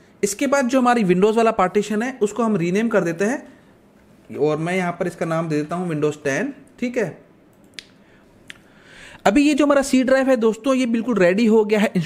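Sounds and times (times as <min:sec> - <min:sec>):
computer mouse clicks: 0:07.5 - 0:08.6.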